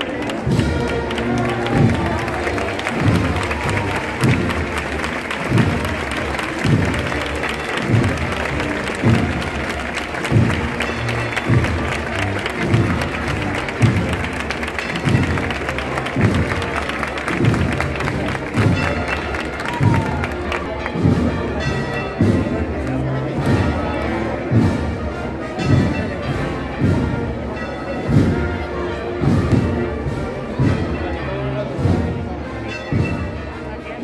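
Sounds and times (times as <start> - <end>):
crowd clapping: 0.0 - 24.7
crowd chatter: 0.0 - 34.0
wind band playing a march: 0.0 - 34.0.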